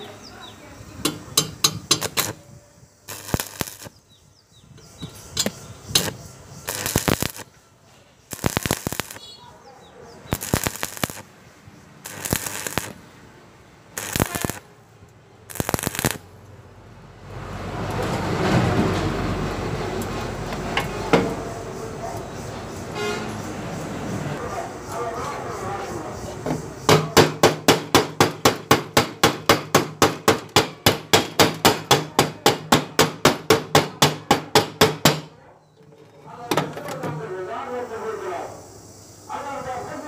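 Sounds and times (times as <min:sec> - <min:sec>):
steady loud noise: 0:00.6 - 0:04.0, 0:05.0 - 0:07.5, 0:08.3 - 0:09.3, 0:10.3 - 0:35.3
welding arc crackling: 0:01.0 - 0:02.4, 0:03.0 - 0:04.0, 0:05.4 - 0:07.5, 0:08.3 - 0:09.4, 0:10.3 - 0:13.0, 0:13.9 - 0:14.7, 0:15.4 - 0:16.3.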